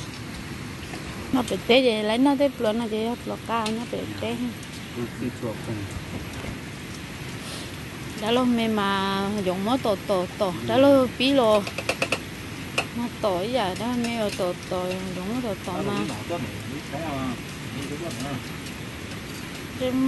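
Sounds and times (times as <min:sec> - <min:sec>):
men talking: 0:04.0 - 0:06.4, 0:10.6 - 0:11.0, 0:15.7 - 0:18.5.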